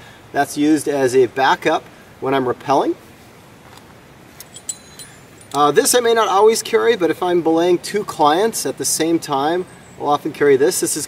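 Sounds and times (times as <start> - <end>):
metallic clinks of carabiners: 4.4 - 6.4.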